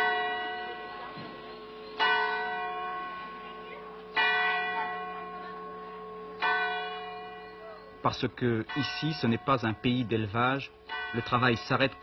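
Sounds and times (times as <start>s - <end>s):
church bell strikes: 0.0s - 12.0s.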